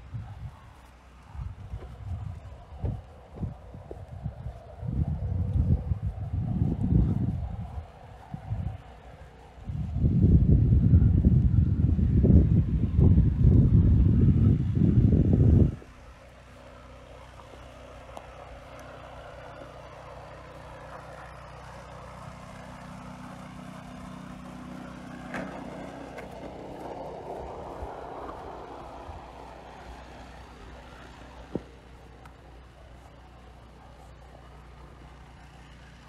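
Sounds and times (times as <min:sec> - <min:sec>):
wind buffeting microphone: 0:00.0 - 0:35.6.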